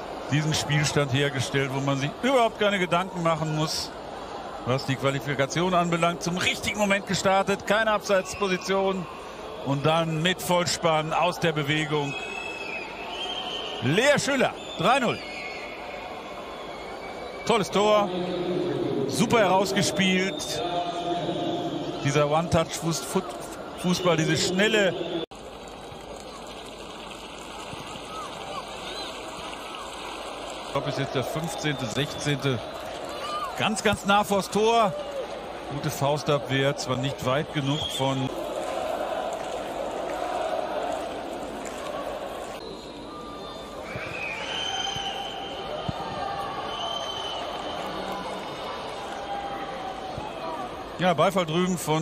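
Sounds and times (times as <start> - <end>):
murmur of crowd voices: 0.0 - 52.0
crowd shouting: 38.2 - 42.6
crowd chanting: 38.3 - 42.6.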